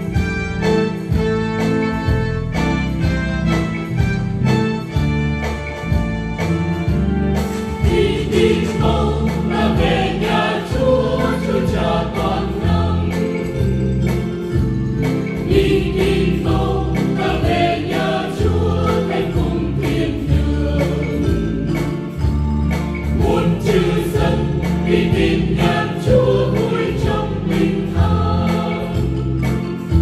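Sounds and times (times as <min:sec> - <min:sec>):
instrumental accompaniment: 0:00.0 - 0:30.0
choir singing a hymn: 0:07.8 - 0:14.2, 0:15.4 - 0:22.3, 0:23.1 - 0:29.9.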